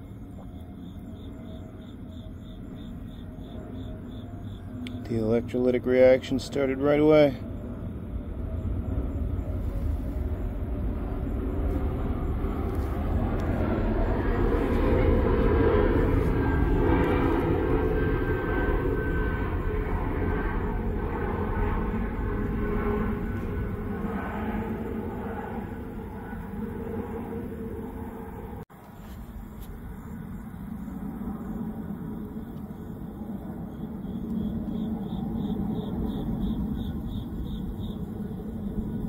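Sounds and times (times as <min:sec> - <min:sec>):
steady low rumble: 0:00.0 - 0:39.0.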